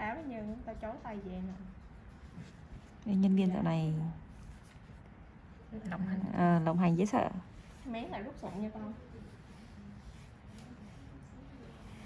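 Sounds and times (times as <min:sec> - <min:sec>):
faint indistinct voices: 0:07.3 - 0:12.0.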